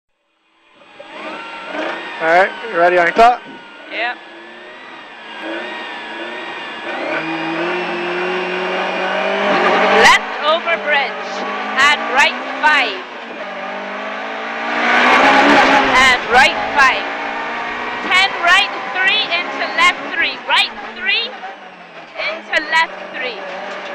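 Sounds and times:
car engine revving: 0.3s - 23.9s
road noise: 0.4s - 23.9s.

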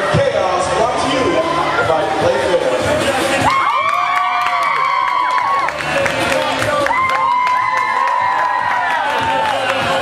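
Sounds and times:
crowd chatter: 0.0s - 3.8s, 4.8s - 10.0s
crowd cheering: 3.4s - 10.0s
whoops and shouts: 3.5s - 5.7s, 6.8s - 9.7s.

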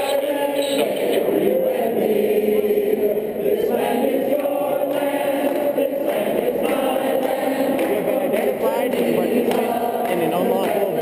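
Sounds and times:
crowd singing together: 0.0s - 11.0s.

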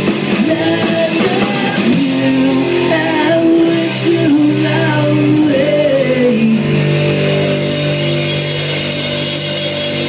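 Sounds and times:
distorted electric guitar chord: 0.0s - 10.0s.

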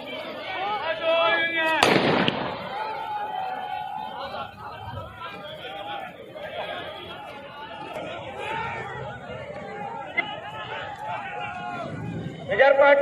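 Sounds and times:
men shouting: 2.6s - 13.0s.

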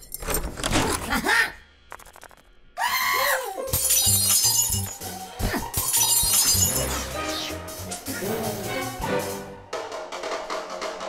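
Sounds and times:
glassware shattering: 3.7s - 5.0s, 5.8s - 6.9s
lively background music: 3.7s - 11.0s.

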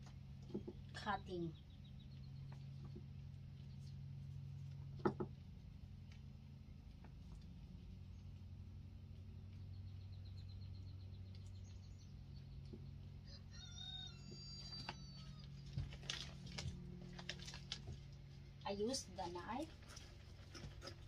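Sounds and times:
steady low hum: 0.0s - 21.0s
bird chirping: 0.6s - 4.1s, 9.3s - 13.1s.

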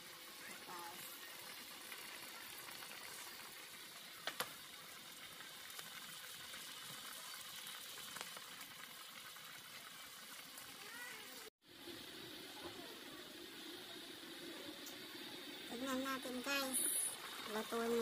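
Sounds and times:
pot simmering and sizzling: 0.0s - 18.0s.

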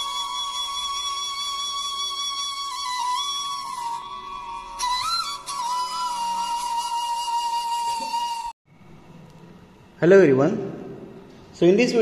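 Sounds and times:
flute holding a note: 0.0s - 8.6s.

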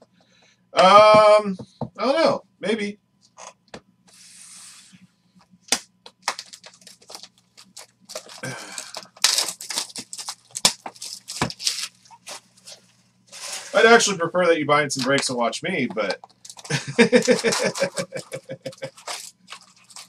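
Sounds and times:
wrapping tearing and crinkling: 5.7s - 13.8s, 16.3s - 20.0s.

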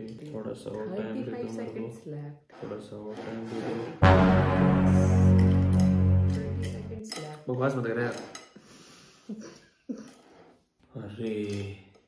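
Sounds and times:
short sharp sounds: 4.0s - 7.0s.

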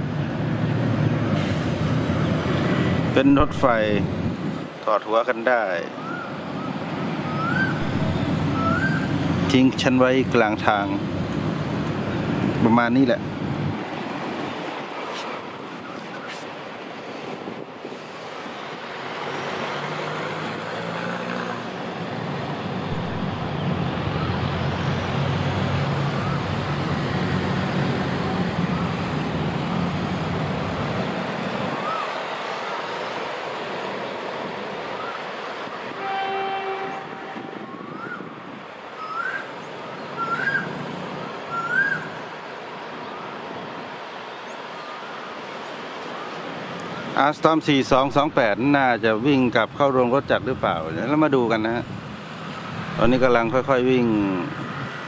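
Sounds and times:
diesel locomotive engine rumbling: 0.0s - 5.1s, 6.4s - 19.0s, 21.7s - 39.0s
train horn toot: 35.9s - 37.8s.

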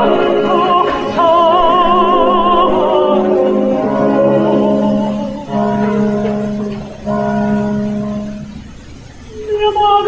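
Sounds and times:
orchestra holding soft chords: 0.0s - 10.0s.

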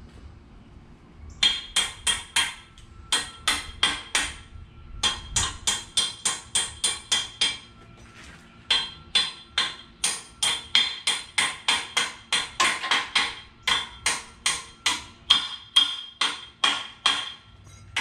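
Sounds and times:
hammer striking metal: 1.4s - 7.7s, 8.7s - 18.0s.

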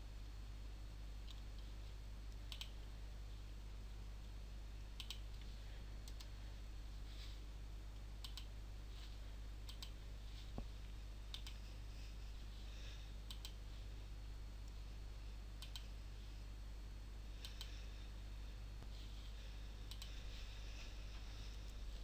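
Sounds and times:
faint low electrical hum: 0.0s - 22.0s.

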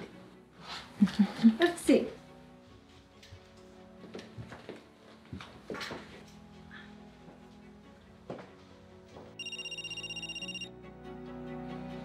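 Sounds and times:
background music: 0.0s - 12.0s
electronic telephone ring: 9.4s - 10.7s.

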